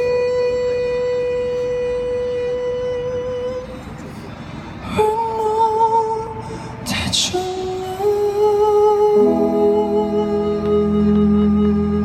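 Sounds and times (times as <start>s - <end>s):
man singing a long high note: 4.9s - 12.0s.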